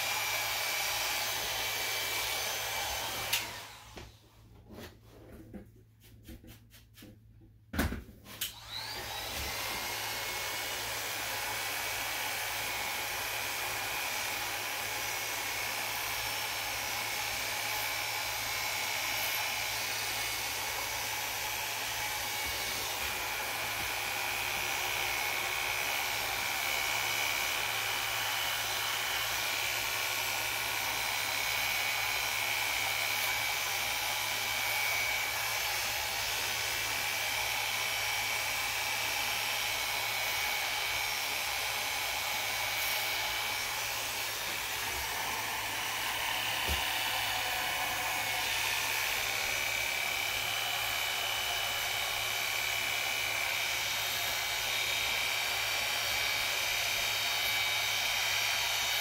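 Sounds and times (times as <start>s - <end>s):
electric hair clipper buzzing: 0.0s - 4.1s, 8.4s - 59.0s.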